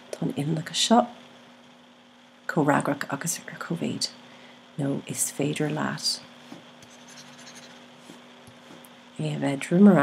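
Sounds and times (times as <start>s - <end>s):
faint scratching: 6.4s - 8.8s.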